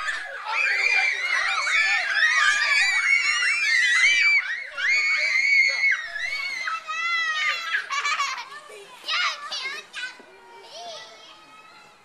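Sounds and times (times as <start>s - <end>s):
young children shrieking at play: 0.0s - 12.0s.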